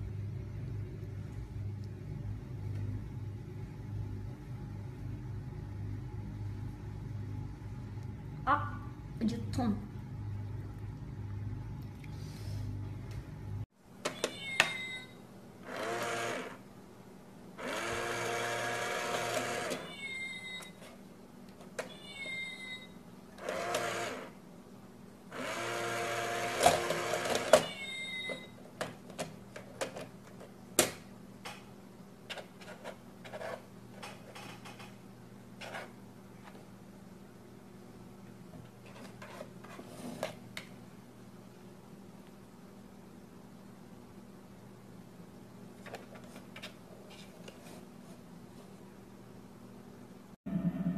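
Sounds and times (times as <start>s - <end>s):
small electric motor whirring: 15.7s - 16.6s, 17.6s - 19.9s, 23.4s - 24.3s, 25.3s - 27.5s.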